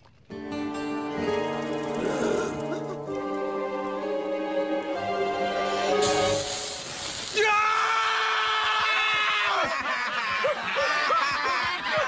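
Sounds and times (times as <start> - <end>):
man chuckling: 2.0 - 3.2, 9.5 - 12.0
hissing rush: 5.7 - 8.4.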